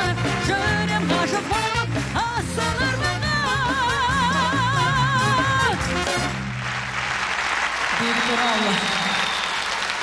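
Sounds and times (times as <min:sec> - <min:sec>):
audience applause: 0:05.7 - 0:10.0.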